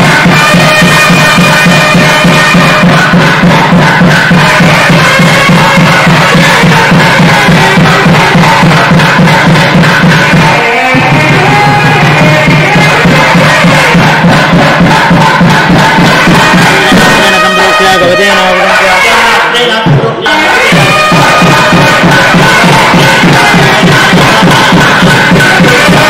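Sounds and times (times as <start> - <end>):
steady drone: 0.0 - 19.4, 20.3 - 26.0
drum beating quickly: 0.0 - 26.0
wind instrument melody: 0.0 - 26.0.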